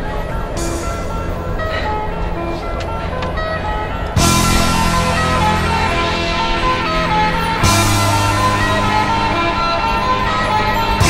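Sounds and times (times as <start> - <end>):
background music held notes: 0.0 - 11.0
heavy rock music: 0.0 - 11.0.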